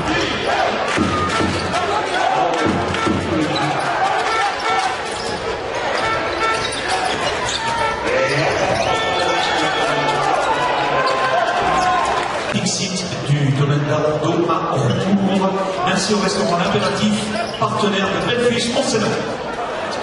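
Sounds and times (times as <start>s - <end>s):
arena crowd noise: 0.0s - 20.0s.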